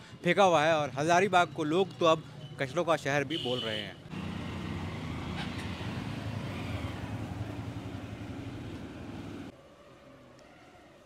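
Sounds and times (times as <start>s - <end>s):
faint street background: 0.0s - 11.0s
vehicle engine running: 4.1s - 9.5s.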